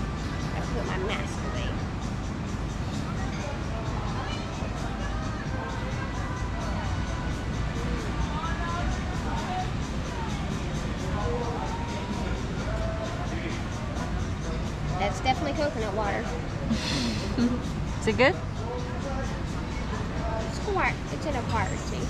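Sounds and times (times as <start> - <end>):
background music: 0.0 - 22.0
faint distant voices: 0.0 - 22.0.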